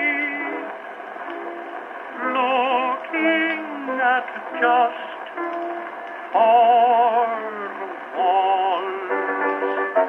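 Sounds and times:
tenor singing with vibrato: 0.0 - 0.7, 2.1 - 5.7, 6.3 - 10.0
piano accompaniment: 0.0 - 10.0.

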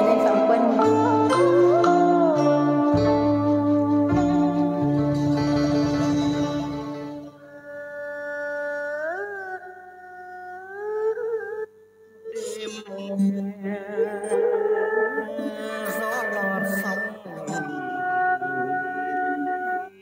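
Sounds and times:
low bass notes: 0.0 - 7.3
plucked strings: 0.0 - 7.4
sliding sustained melodic line: 0.0 - 7.4, 13.8 - 20.0.

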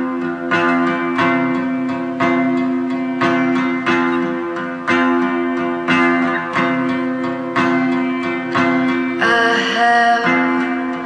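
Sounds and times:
guitar chords strummed: 0.0 - 11.0.

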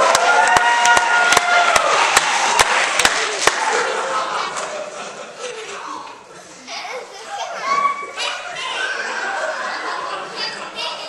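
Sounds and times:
young people talking and calling: 2.2 - 11.0.

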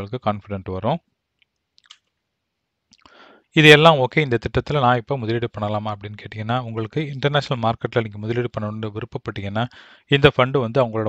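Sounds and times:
faint mouth clicks: 1.4 - 2.1, 2.9 - 3.2.

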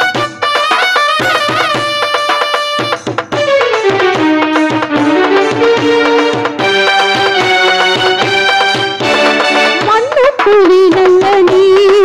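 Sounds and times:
electronic keyboard melody: 0.0 - 10.2
tabla rhythm: 0.0 - 12.0.

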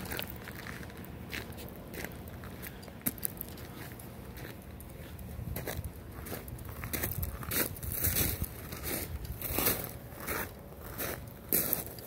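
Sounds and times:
footsteps crunching: 0.0 - 12.0.

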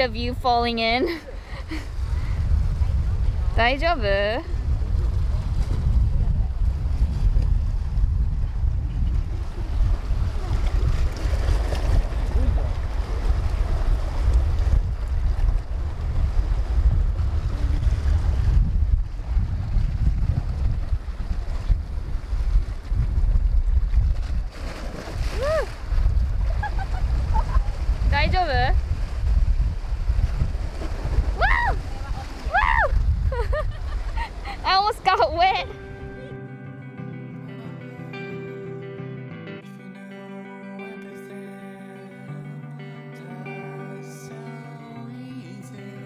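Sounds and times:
wind buffeting microphone: 0.0 - 36.3
sea waves washing on rocks: 9.3 - 18.5.

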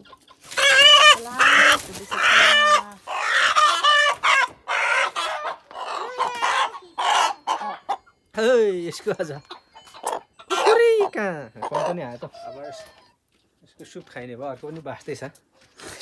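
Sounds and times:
rooster squawking alarm calls: 0.4 - 8.0.

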